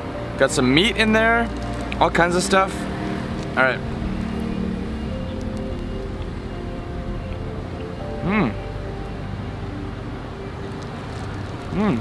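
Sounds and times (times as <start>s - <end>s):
low steady rumble: 0.0s - 11.8s
background music with held notes: 0.0s - 12.0s.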